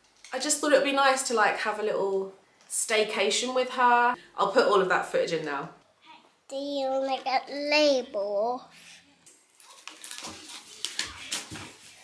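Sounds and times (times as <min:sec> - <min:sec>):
paper envelope tearing: 0:09.6 - 0:12.0.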